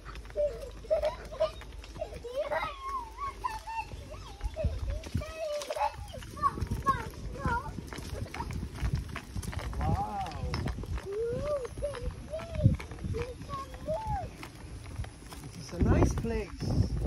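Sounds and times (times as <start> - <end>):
horses walking on dirt: 0.0 - 17.0.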